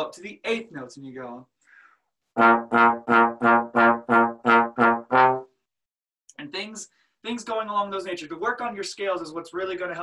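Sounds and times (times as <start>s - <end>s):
trombone short tongued notes: 2.4s - 5.5s.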